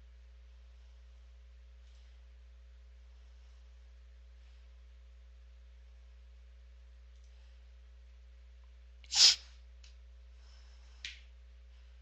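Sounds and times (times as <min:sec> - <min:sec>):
faint steady hum: 0:00.0 - 0:12.0
person sneezing: 0:09.1 - 0:09.5.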